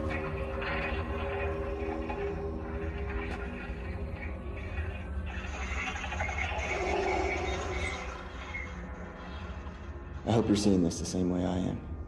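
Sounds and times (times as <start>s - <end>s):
low rumbling drone: 0.0s - 11.1s.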